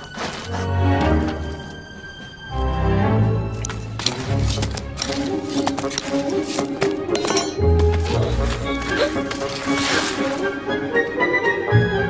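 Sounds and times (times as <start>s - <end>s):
film score music: 0.0s - 12.0s
spoon clinking in soil: 7.1s - 7.7s.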